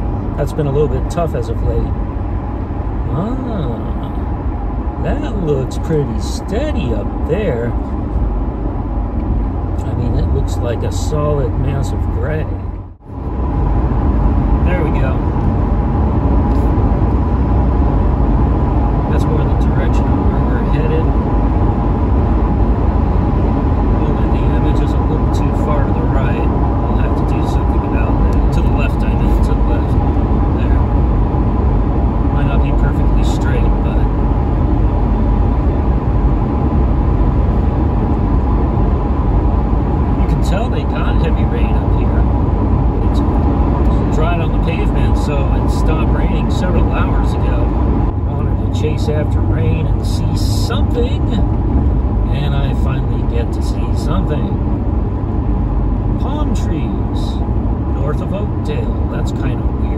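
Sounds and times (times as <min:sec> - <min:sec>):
car road and engine rumble: 0:00.0 - 0:59.9.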